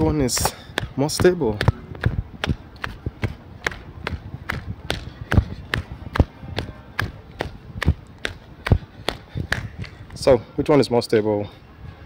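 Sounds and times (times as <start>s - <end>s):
jogging footsteps: 0.0s - 10.4s.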